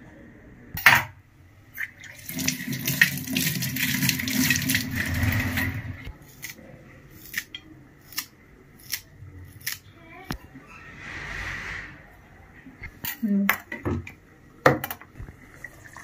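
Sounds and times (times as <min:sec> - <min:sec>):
tap water running into sink: 0:02.0 - 0:05.7.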